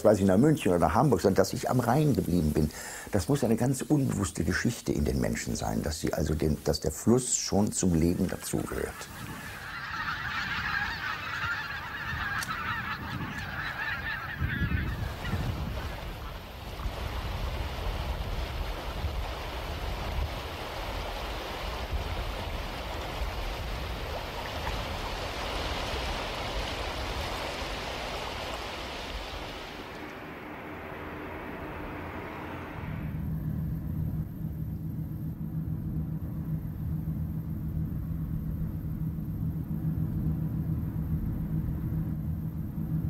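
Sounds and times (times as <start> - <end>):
choppy water: 0.0 - 32.4
geese honking in flight: 7.4 - 19.5, 22.4 - 33.1
wind rushing: 8.1 - 36.9
low rumble: 10.6 - 43.0.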